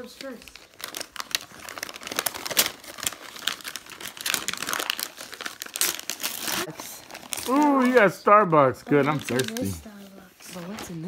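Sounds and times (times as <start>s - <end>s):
wrapping paper tearing and crumpling: 0.0s - 11.0s.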